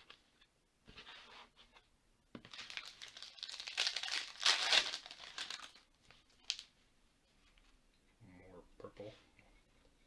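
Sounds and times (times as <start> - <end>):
foil wrapper tearing and crinkling: 2.5 - 5.8.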